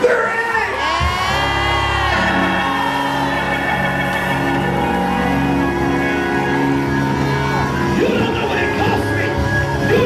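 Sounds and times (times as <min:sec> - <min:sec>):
keyboard sustained chords: 0:00.8 - 0:10.0.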